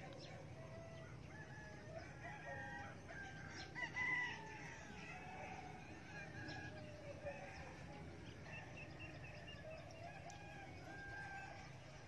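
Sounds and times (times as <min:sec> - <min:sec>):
low steady hum: 0:00.0 - 0:12.0
rooster crowing: 0:00.5 - 0:07.7, 0:09.9 - 0:11.8.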